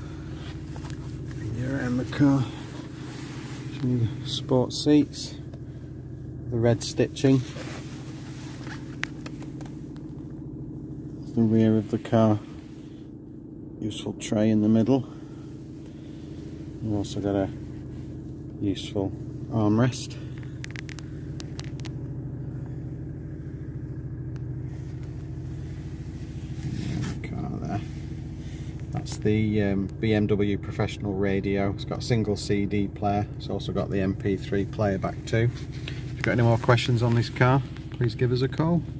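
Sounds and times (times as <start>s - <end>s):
car engine idling: 0.0s - 38.9s
small handling clicks: 20.4s - 22.0s.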